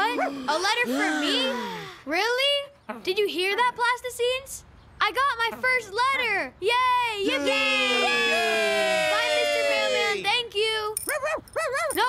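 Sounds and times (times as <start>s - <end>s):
small dog yapping: 11.1s - 12.0s.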